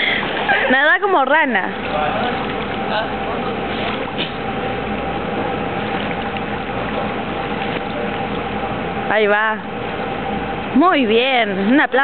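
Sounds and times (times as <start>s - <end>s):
constant hum: 0.0s - 12.0s
water rushing in a pool: 0.0s - 12.0s.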